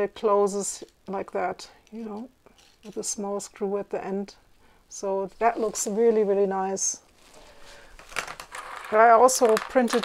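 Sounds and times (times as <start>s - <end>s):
plastic parts rustling and tapping: 7.3s - 10.0s.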